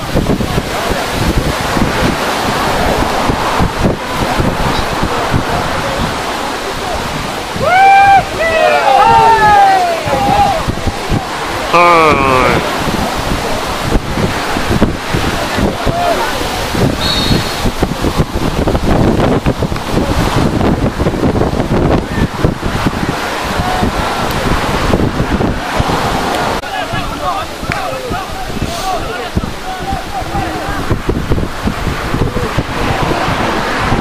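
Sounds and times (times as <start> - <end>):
wind rumbling on microphone: 0.0 - 34.0
people shouting: 7.5 - 13.0, 15.3 - 17.7, 23.3 - 24.2, 25.4 - 31.0.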